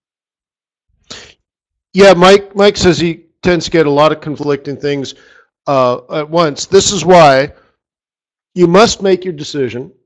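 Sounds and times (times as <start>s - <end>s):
short breath: 1.0s - 1.4s, 5.2s - 5.6s, 7.5s - 7.9s.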